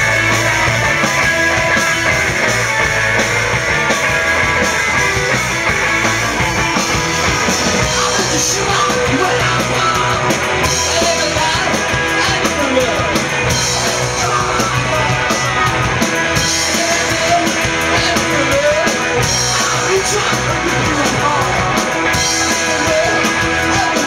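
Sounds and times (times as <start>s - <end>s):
drum kit: 0.0s - 24.0s
electric guitar: 0.0s - 24.0s
man singing into microphone: 7.8s - 13.2s, 16.5s - 24.0s.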